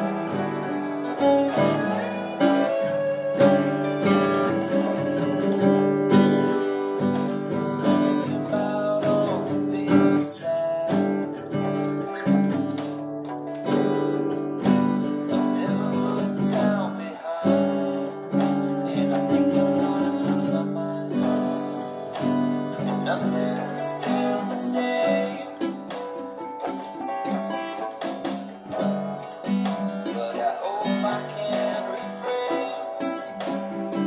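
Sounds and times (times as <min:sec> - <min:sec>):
guitar chords strummed and plucked: 0:00.0 - 0:34.0.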